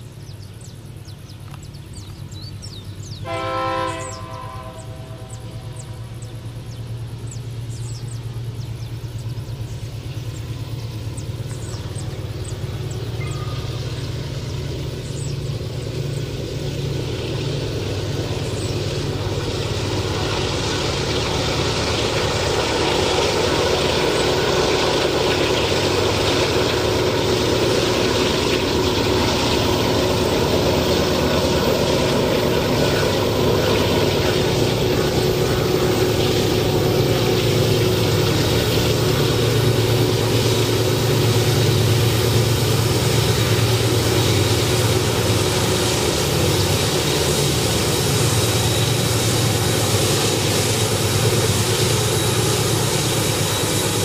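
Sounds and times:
diesel locomotive engine drone: 0.0s - 54.0s.

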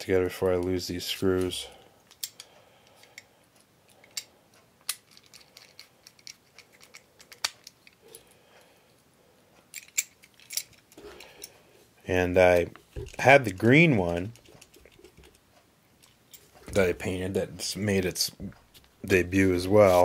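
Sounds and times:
small screws clicking: 2.0s - 3.2s, 3.9s - 8.3s, 9.7s - 11.5s.

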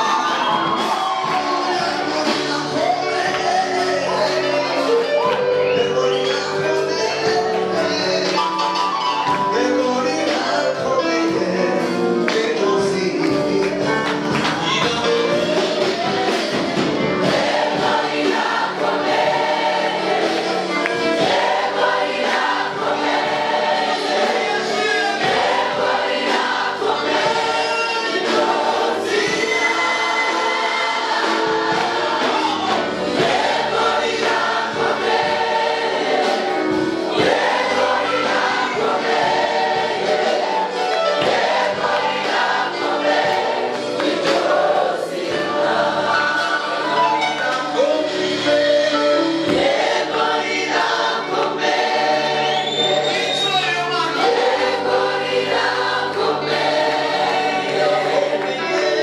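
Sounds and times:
gospel choir singing: 0.0s - 59.0s.

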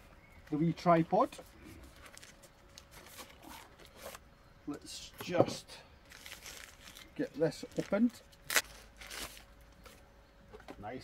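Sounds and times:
plastic rustling: 1.8s - 4.2s, 6.0s - 9.5s
plastic packaging tearing: 6.1s - 9.5s.

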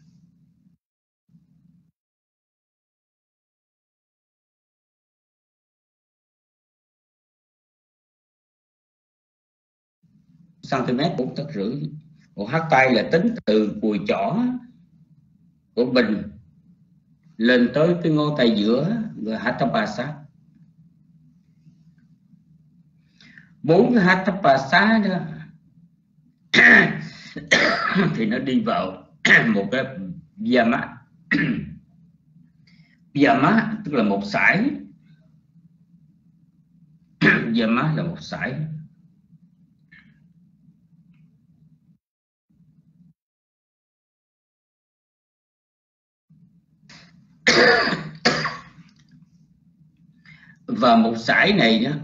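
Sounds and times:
low steady hum: 0.0s - 1.9s, 10.0s - 43.2s, 46.3s - 52.0s
man clearing his throat: 26.6s - 28.2s, 29.3s - 29.6s, 31.3s - 31.8s, 37.2s - 37.5s, 47.5s - 48.8s
man coughing: 26.6s - 28.3s, 29.3s - 29.6s, 31.3s - 31.8s, 37.2s - 37.5s, 47.5s - 48.8s.

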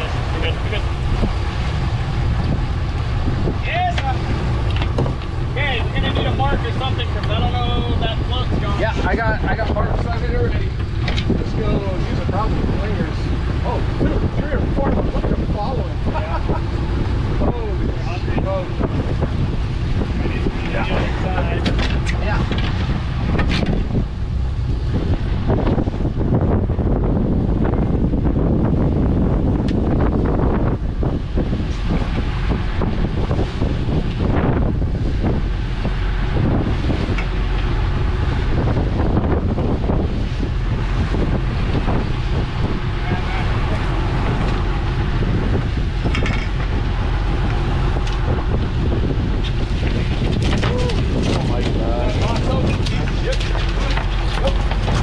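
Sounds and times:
boat engine drone: 0.0s - 55.0s
rush of boat wake: 0.0s - 55.0s
wind buffeting microphone: 0.0s - 55.0s.

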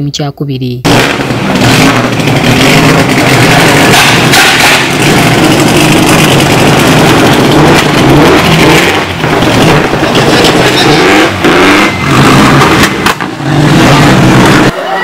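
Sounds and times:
rally car engine passing: 0.9s - 15.0s.

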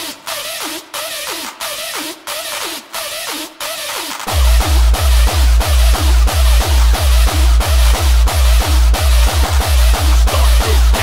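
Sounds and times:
heavy distorted kick drum: 4.2s - 11.0s.

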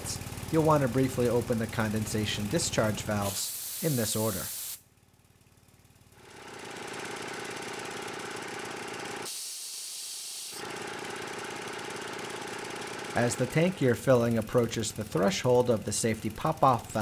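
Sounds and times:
air compressor engine running: 0.0s - 17.0s
loud air hiss from drain valve: 3.1s - 4.8s, 9.3s - 10.6s.

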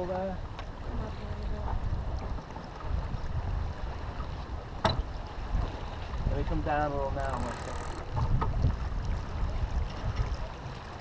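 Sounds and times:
water rushing past hull: 0.0s - 11.0s
wind buffeting microphone: 0.0s - 11.0s.

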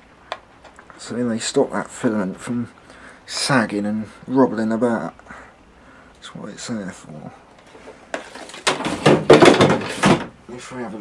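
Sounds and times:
handling noise rustling and clattering: 7.5s - 10.4s
scraping and rattling: 7.6s - 10.4s.

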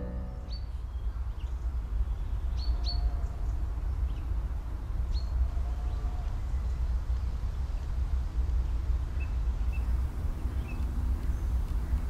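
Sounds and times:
high bird chirps: 0.0s - 0.8s
low outdoor rumble: 0.0s - 2.0s, 7.8s - 12.0s.

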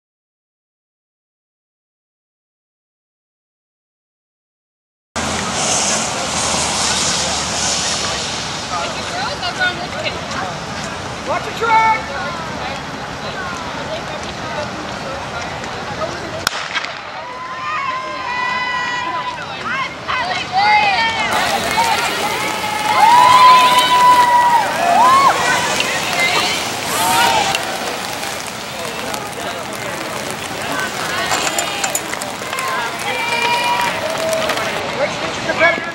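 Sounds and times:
outdoor background noise: 5.2s - 35.9s
spectators chatting: 19.1s - 35.5s.

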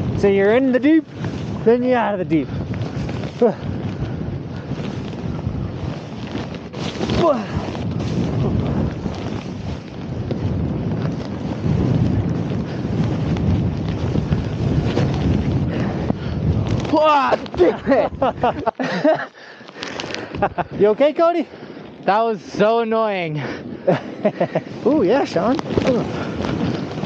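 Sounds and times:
wind buffeting microphone: 0.0s - 27.0s
snowboard hissing through snow: 1.1s - 16.7s.

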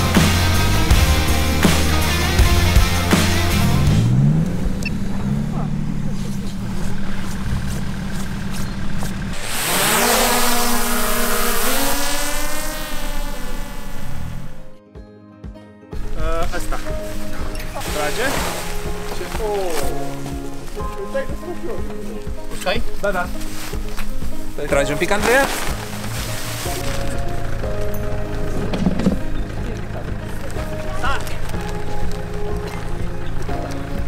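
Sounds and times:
car engine revving: 0.0s - 14.8s, 22.7s - 34.0s
drone propellers whining: 0.0s - 14.8s
voices: 4.9s - 8.0s, 24.1s - 34.0s.

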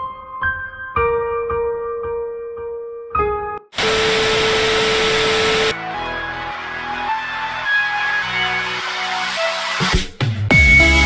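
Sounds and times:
music: 0.0s - 3.7s, 5.7s - 11.0s
steady beep: 3.8s - 5.7s
tv static hiss: 3.8s - 5.7s.

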